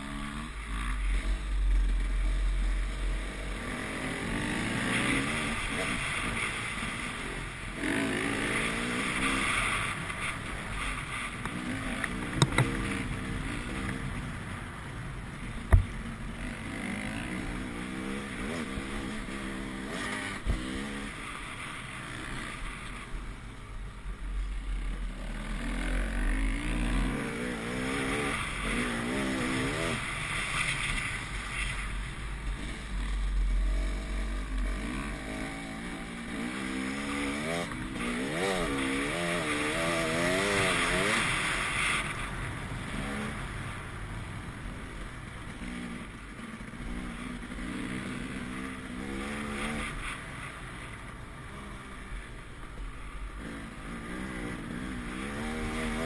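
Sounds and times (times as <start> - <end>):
dirt bike engine revving: 0.0 - 14.0, 15.7 - 22.8, 24.7 - 31.8, 32.5 - 42.2, 45.5 - 50.5, 53.4 - 56.0.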